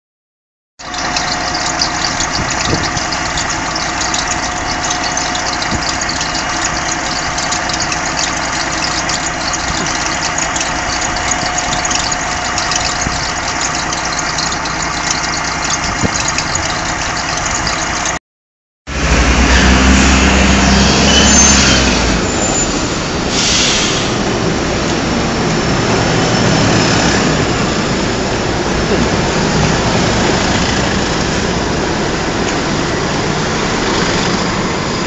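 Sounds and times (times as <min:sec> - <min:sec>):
bus diesel engine idling: 0:00.8 - 0:18.2, 0:22.9 - 0:35.0.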